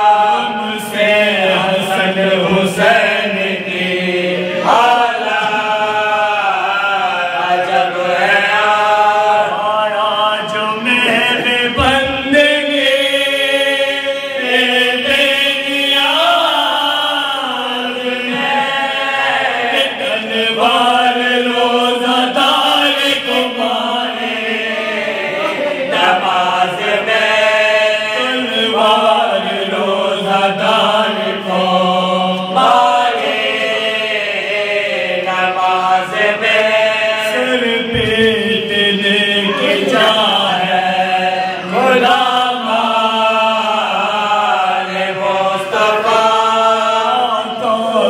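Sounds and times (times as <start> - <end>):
men chanting in chorus: 0.0 - 48.0
lead male voice chanting: 37.3 - 43.2.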